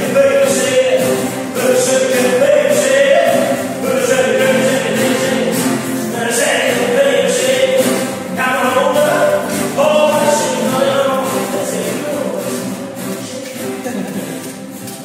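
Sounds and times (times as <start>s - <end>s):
voices singing held notes: 0.0s - 14.4s
acoustic guitars strummed and picked: 0.0s - 15.0s.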